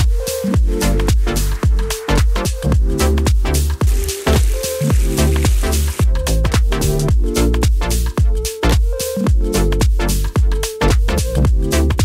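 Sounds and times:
electronic dance music: 0:00.0 - 0:12.0
kick drum beat: 0:00.0 - 0:12.0.

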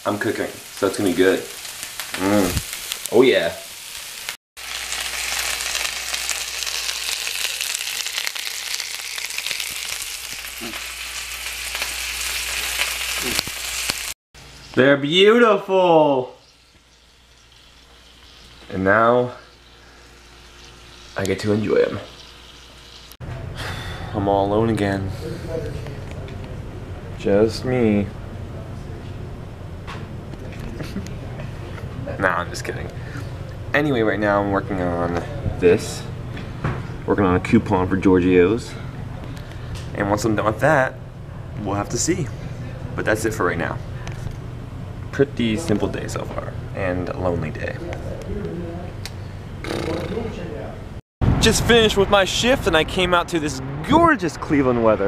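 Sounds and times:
man sighing: 0:23.6 - 0:24.2.

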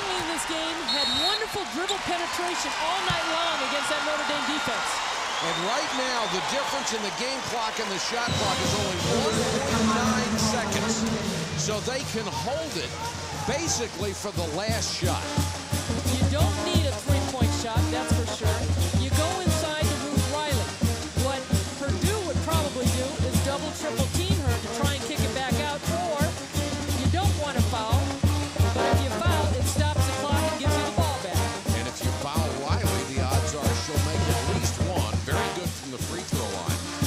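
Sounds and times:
crowd voices: 0:00.0 - 0:37.0
pep band playing brass tune: 0:05.2 - 0:37.0
driving drum beat: 0:06.3 - 0:37.0.

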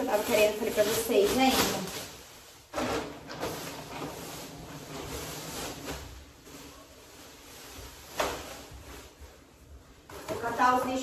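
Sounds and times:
bag rustling: 0:00.0 - 0:11.0.

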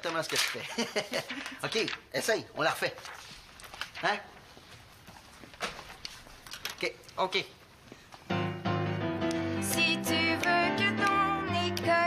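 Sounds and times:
paper rustling: 0:00.0 - 0:06.9.

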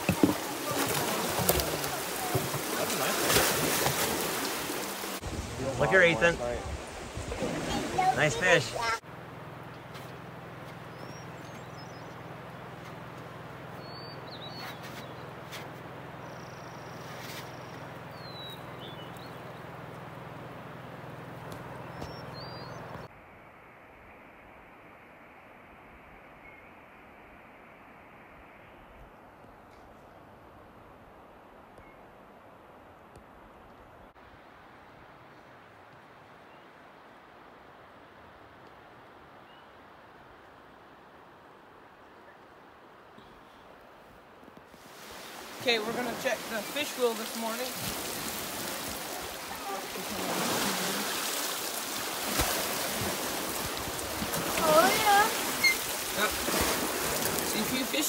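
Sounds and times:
faint bird chirps: 0:13.8 - 0:15.3, 0:21.8 - 0:29.1, 0:54.9 - 0:55.9
even hiss: 0:44.8 - 0:58.0.

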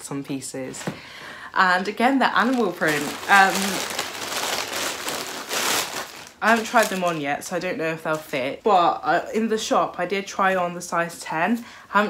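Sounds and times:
plastic bag crinkling: 0:02.2 - 0:08.3.

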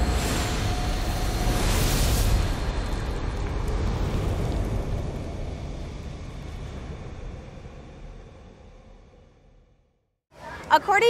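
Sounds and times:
deep cinematic rumble: 0:00.0 - 0:10.0.

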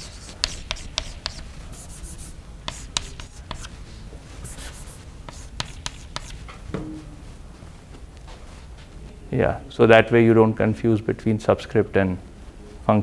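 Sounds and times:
chalk writing on blackboard: 0:00.0 - 0:03.8, 0:04.4 - 0:06.5.

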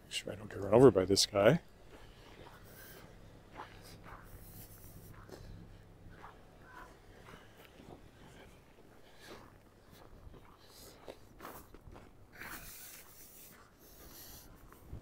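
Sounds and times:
footsteps on snow: 0:00.7 - 0:15.0.

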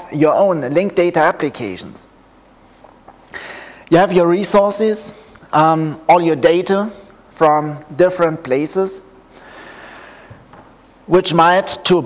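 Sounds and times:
man drawing a breath: 0:03.3 - 0:03.9, 0:09.3 - 0:10.5.

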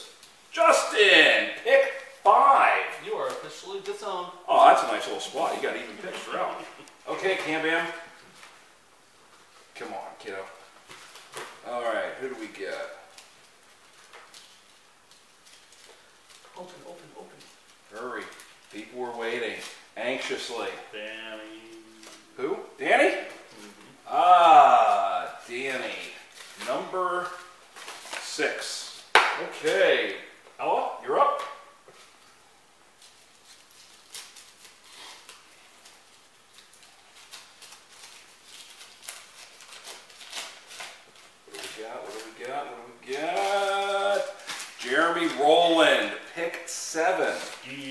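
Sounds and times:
person speaking: 0:00.0 - 0:08.1, 0:16.5 - 0:27.6, 0:28.2 - 0:31.7, 0:41.5 - 0:47.9
paper crinkling and rustling: 0:09.3 - 0:22.4, 0:24.8 - 0:29.8, 0:31.8 - 0:47.9.

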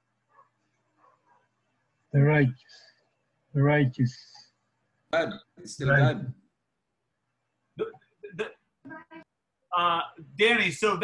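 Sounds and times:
person speaking haltingly: 0:05.2 - 0:06.3, 0:09.8 - 0:11.0.

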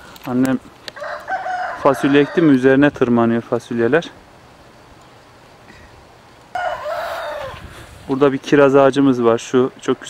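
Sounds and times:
rooster crowing: 0:01.0 - 0:02.6, 0:06.5 - 0:07.9.

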